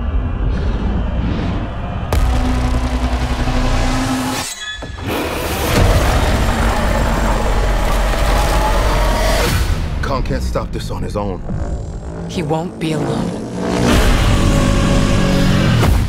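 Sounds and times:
dramatic trailer music: 0:00.0 - 0:16.0
sudden impact hit: 0:02.0 - 0:04.5.

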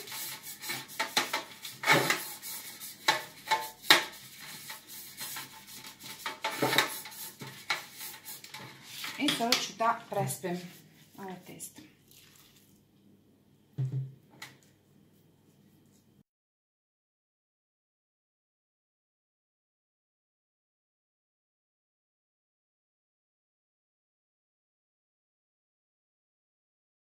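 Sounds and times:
brush scraping and tapping metal pan: 0:00.0 - 0:11.4.

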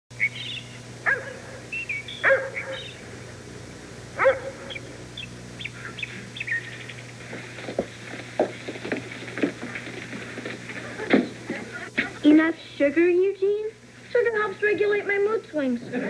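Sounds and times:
birds chirping: 0:00.1 - 0:15.4
steady low hum: 0:00.1 - 0:16.0
dog barking: 0:01.0 - 0:03.0, 0:04.2 - 0:04.9.

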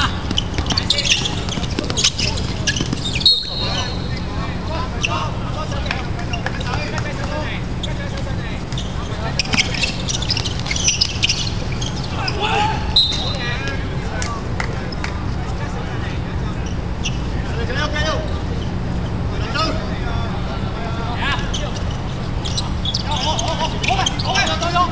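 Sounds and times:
ball and feet knocking on court: 0:00.0 - 0:03.3
players shouting: 0:00.0 - 0:14.1, 0:19.4 - 0:24.9.

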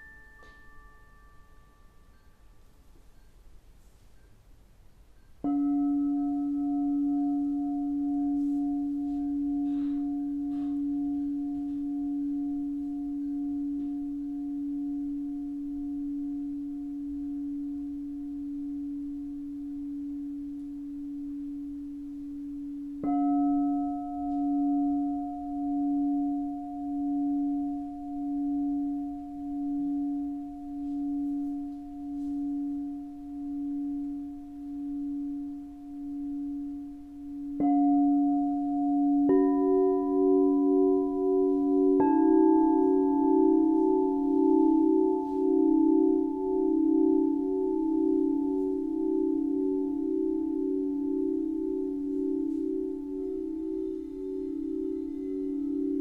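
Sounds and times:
singing bowl struck: 0:00.0 - 0:03.6, 0:05.2 - 0:56.0
singing bowl ringing: 0:00.0 - 0:56.0.

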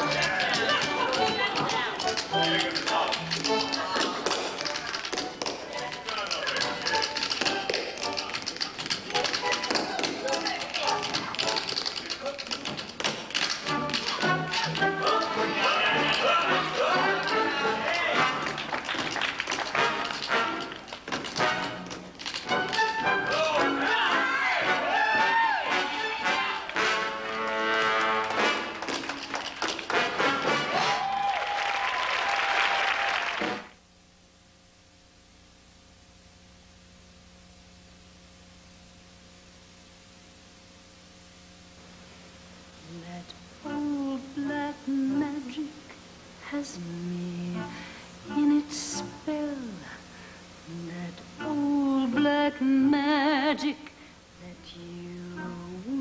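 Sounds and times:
tap shoes on stage floor: 0:00.0 - 0:24.2, 0:26.7 - 0:32.0
accompanying music: 0:00.0 - 0:31.1, 0:54.7 - 0:56.0
audience applauding: 0:00.0 - 0:33.8.

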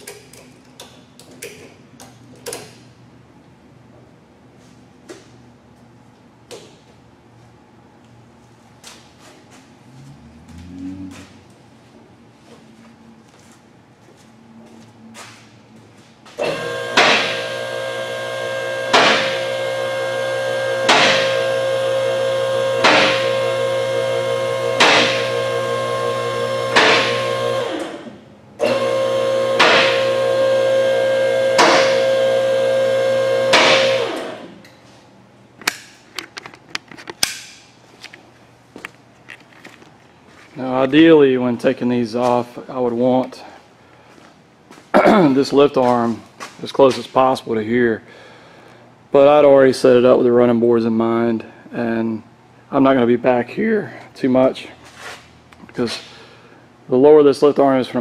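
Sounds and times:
hydraulic pump motor humming: 0:16.4 - 0:34.6.

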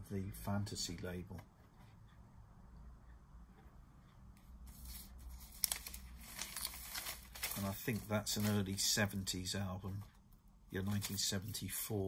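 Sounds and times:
paper rustling and crinkling: 0:04.7 - 0:09.0, 0:10.8 - 0:11.6.

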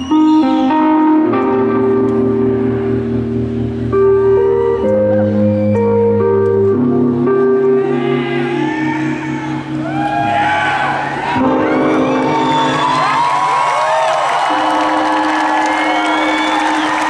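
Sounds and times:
live band chords ringing: 0:00.0 - 0:17.0
audience whooping and cheering: 0:07.9 - 0:17.0.

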